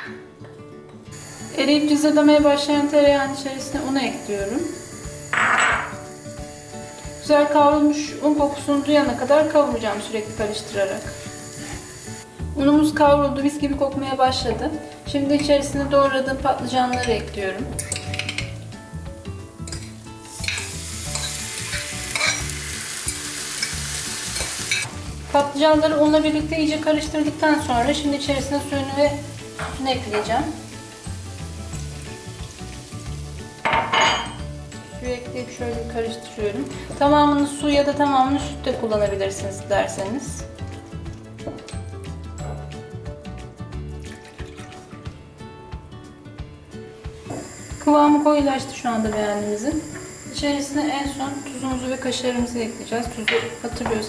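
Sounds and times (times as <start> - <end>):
background music: 0.0 - 54.0
food sizzling in a pan: 1.1 - 13.6, 16.3 - 45.0, 46.8 - 54.0
milk pouring into a pan: 44.0 - 44.8.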